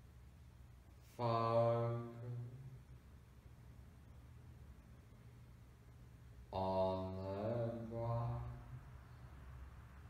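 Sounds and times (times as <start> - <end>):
man chanting a low tone: 1.1 - 2.9, 6.5 - 9.0.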